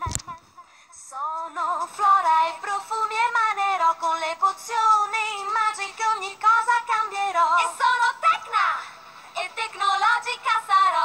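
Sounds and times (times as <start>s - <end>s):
a cappella singing in harmony: 0.6s - 8.5s, 9.3s - 11.0s.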